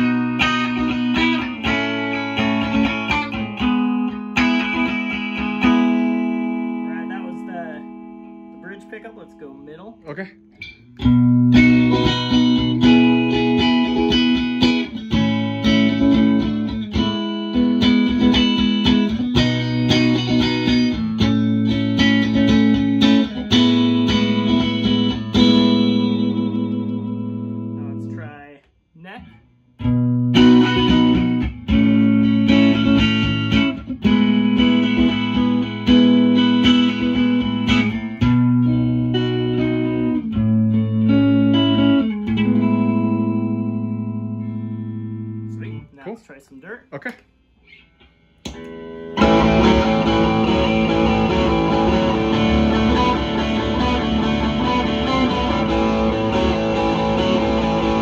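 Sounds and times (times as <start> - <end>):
electric guitar playing: 0.0 - 28.6, 29.2 - 45.9, 47.6 - 58.0.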